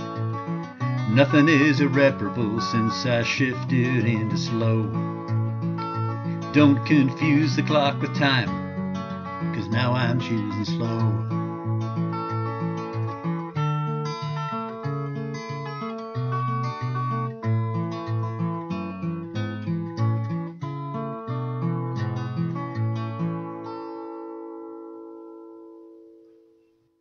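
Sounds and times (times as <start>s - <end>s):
acoustic guitar playing: 0.0s - 26.9s.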